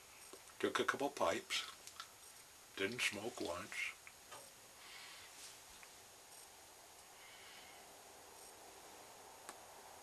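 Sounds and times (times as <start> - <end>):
faint background hiss: 0.0 - 10.0
tiny ticks: 1.6 - 2.5, 9.4 - 9.6.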